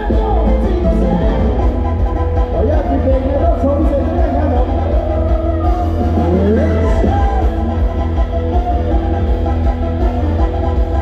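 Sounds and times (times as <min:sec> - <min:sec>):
live band playing dance music: 0:00.0 - 0:11.0.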